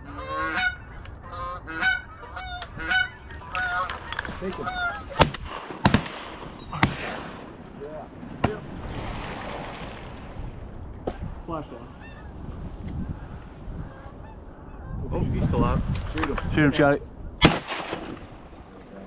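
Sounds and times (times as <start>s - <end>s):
geese honking: 0.0s - 5.3s, 12.0s - 12.4s, 13.0s - 15.0s
shotgun shots: 5.2s - 7.5s, 17.4s - 18.4s.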